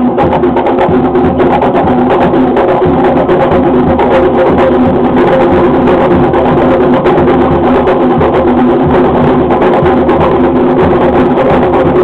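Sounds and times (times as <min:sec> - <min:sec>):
fast drum beating: 0:00.0 - 0:12.0.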